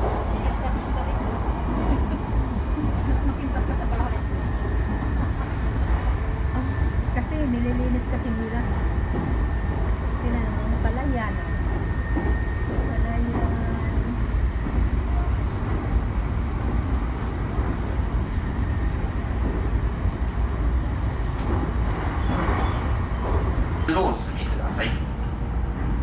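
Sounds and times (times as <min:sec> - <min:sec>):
train carriage rumbling on rails: 0:00.0 - 0:26.0.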